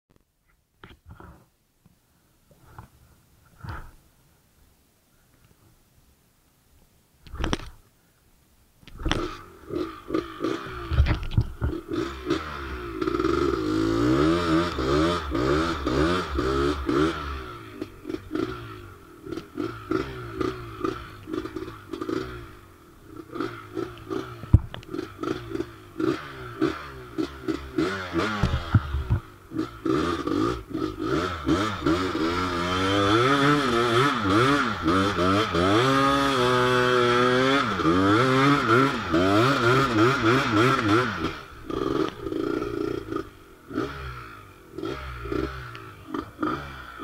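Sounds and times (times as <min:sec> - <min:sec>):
two-stroke quad engine revving: 0:09.0 - 0:47.0.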